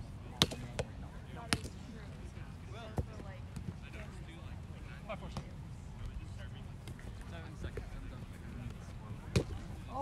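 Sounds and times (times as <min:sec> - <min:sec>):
faint murmur of voices: 0:00.0 - 0:10.0
ball slapped and bouncing off net: 0:00.3 - 0:01.8, 0:09.2 - 0:09.7.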